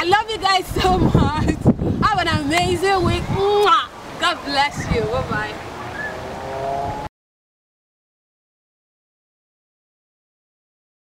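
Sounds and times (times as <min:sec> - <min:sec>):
outdoor background noise: 0:00.0 - 0:07.1
engine hum: 0:05.5 - 0:07.1.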